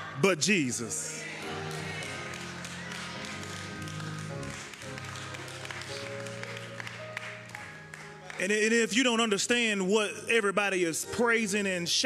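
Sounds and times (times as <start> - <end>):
person preaching: 0.0 - 1.5, 8.3 - 12.0
keyboard playing sustained chords: 0.0 - 12.0.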